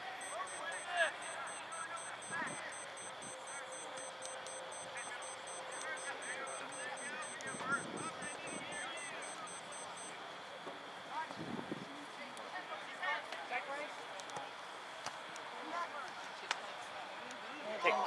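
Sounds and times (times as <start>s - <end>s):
faint high-pitched pulsing: 0.0s - 10.2s.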